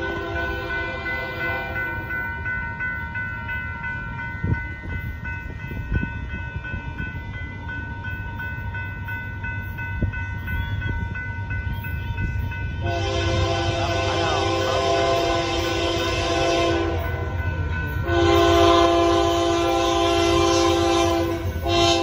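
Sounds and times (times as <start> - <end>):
approaching train rumble: 0.0 - 22.0
crossing warning bell ringing: 0.0 - 22.0.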